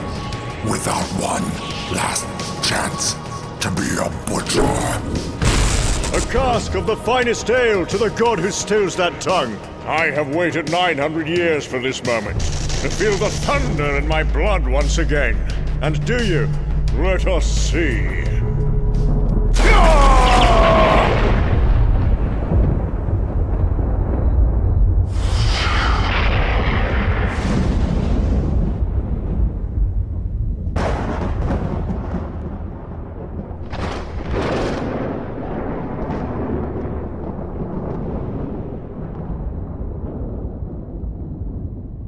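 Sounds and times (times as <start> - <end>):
deep thunder rumble: 0.0 - 8.6, 12.2 - 42.0
crackling thunder blasts: 0.0 - 11.2, 12.2 - 42.0.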